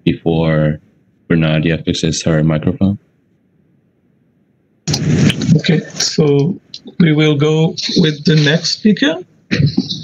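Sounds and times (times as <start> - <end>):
man speaking: 5.4 - 10.0.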